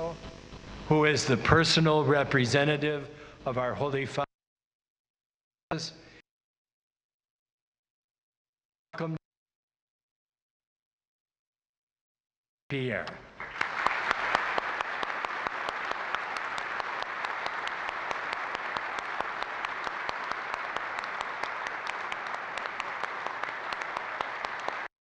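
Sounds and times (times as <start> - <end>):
congregation applauding: 13.4 - 24.9.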